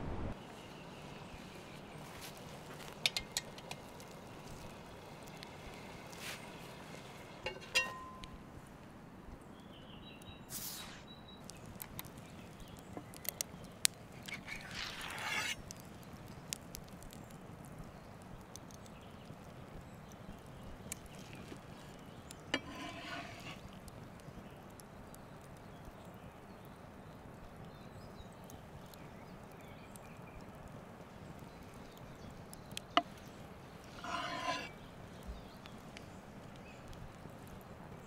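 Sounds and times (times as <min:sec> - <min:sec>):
metallic pot handle clank: 0:07.4 - 0:08.3
blade scraping wood: 0:14.3 - 0:15.7, 0:22.6 - 0:23.7, 0:33.8 - 0:34.8
cleaver cutting meat on board: 0:33.9 - 0:34.7.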